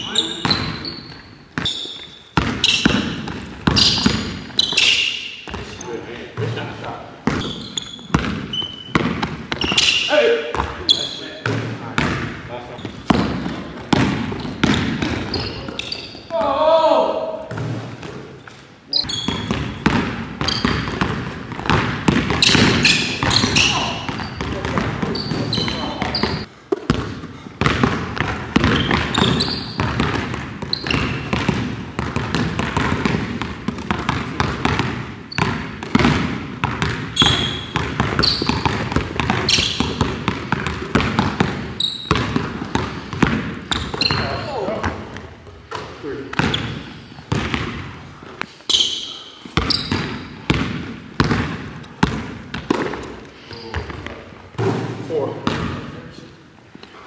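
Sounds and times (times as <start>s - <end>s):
basketballs bouncing on wood floor: 0.0s - 56.2s.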